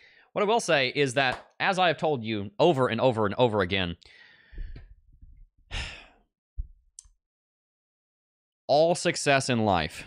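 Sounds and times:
man breathing close to microphone: 4.0 - 5.0, 5.7 - 6.2.

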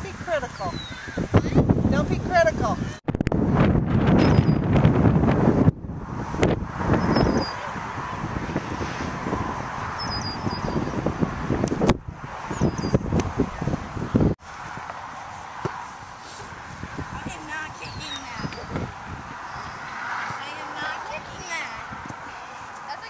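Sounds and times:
wind buffeting microphone: 0.0 - 23.0
high bird chirps: 0.6 - 1.6, 7.0 - 7.6, 10.0 - 11.0, 12.5 - 13.0, 17.8 - 18.8.

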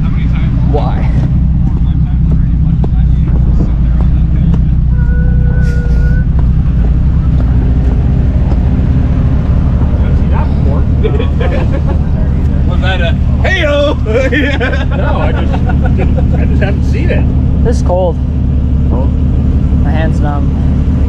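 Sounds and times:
engine running at low revs: 0.0 - 21.0
brief steady tone: 4.9 - 6.4.

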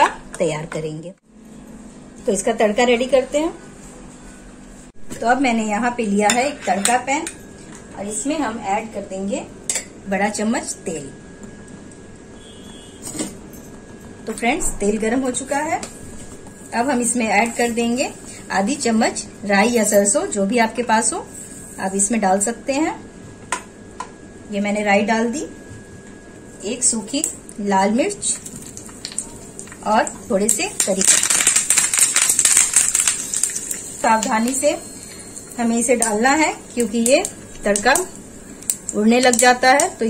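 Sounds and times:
faint thin high tone: 12.4 - 13.1
leaves crackling in hot oil: 28.0 - 40.0.

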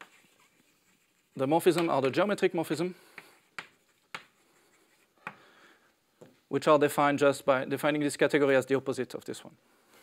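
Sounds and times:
chalk tapping on blackboard: 0.0 - 2.0, 3.1 - 5.4
faint chalk scratching: 0.0 - 5.4.

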